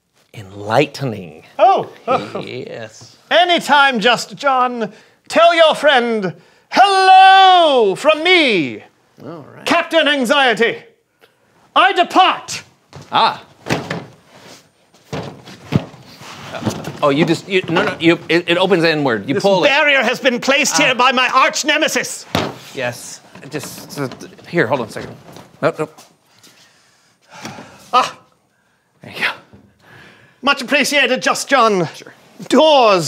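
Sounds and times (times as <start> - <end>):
wooden door thunking in frame: 13.6 - 14.2
breathy exhale: 29.8 - 30.4.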